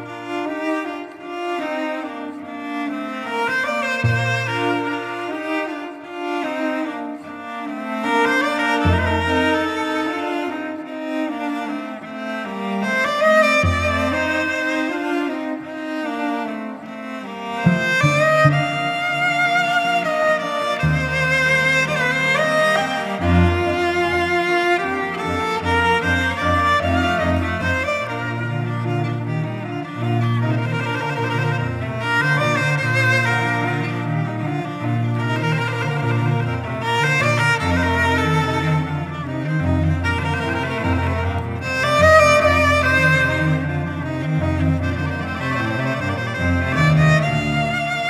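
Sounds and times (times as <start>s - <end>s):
slow string music: 0.0s - 48.0s.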